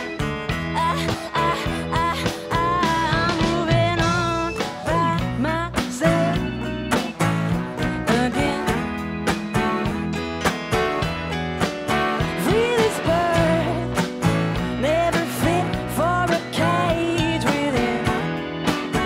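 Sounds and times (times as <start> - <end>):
live country-blues band: 0.0 - 19.0
sliding lead melody: 0.0 - 19.0.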